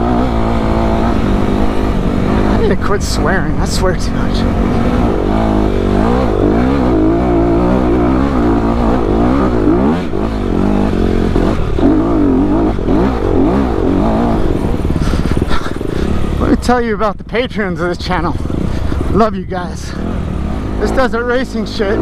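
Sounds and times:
dirt bike engine revving: 0.0 - 17.0, 17.6 - 22.0.

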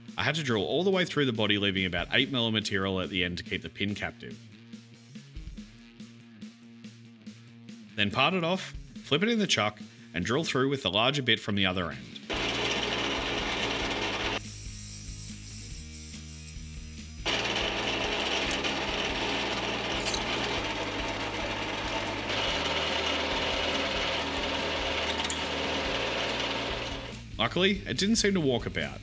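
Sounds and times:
lathe motor hum: 12.3 - 14.4, 17.3 - 27.1
drill boring through metal: 12.3 - 27.1
parting tool cutting metal: 12.3 - 27.1.

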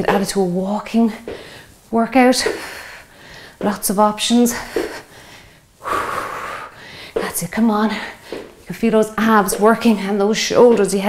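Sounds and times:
woman breathing heavily: 1.1 - 8.7.

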